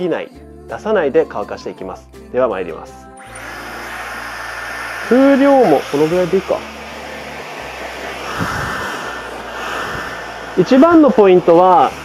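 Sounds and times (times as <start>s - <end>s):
hair dryer blowing: 3.2s - 12.0s.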